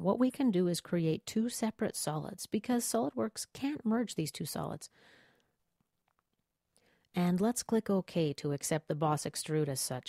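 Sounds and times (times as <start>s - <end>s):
faint breath: 4.9s - 5.6s, 6.8s - 7.1s.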